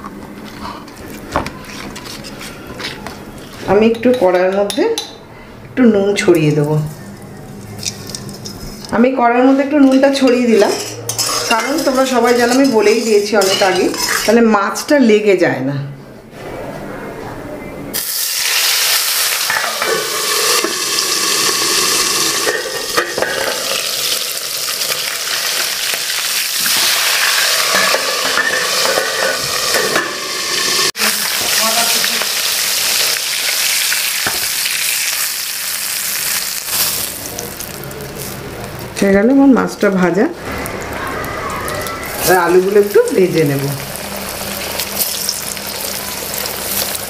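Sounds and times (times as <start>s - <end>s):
fish sizzling in hot oil: 18.0s - 38.5s, 42.1s - 47.0s.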